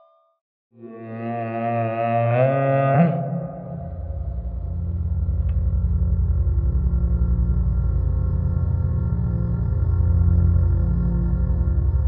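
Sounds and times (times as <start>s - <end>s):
long low tone with overtones: 0.8s - 12.0s.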